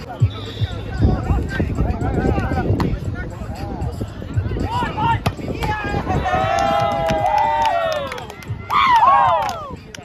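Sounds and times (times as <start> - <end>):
players shouting: 4.6 - 9.8.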